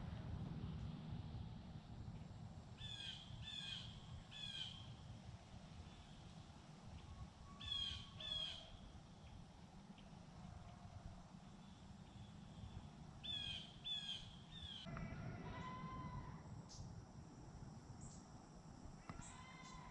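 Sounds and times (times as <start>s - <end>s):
steady low background rumble: 0.0s - 19.0s
bird calling: 2.8s - 4.9s, 7.5s - 8.9s, 13.2s - 14.9s.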